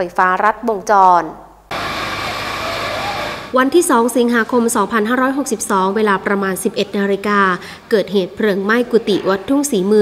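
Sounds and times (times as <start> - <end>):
woman speaking: 0.0 - 1.4, 3.5 - 10.0.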